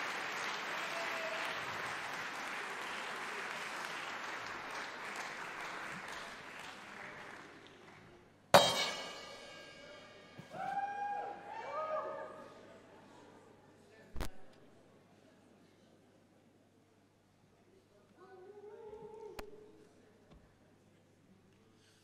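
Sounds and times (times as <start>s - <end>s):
audience applauding: 0.0s - 8.2s
loud ringing strike: 8.6s - 10.5s.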